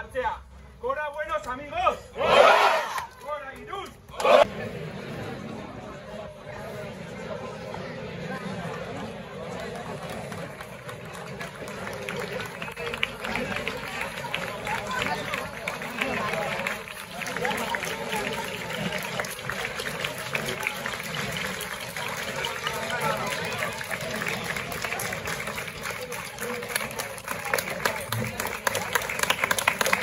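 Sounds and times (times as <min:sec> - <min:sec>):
crowd talking: 0:00.0 - 0:30.0.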